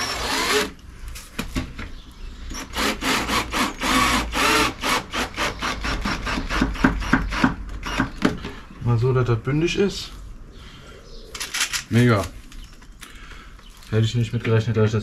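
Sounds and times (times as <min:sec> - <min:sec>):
cordless drill driving screw: 0:00.0 - 0:00.8, 0:02.5 - 0:08.2.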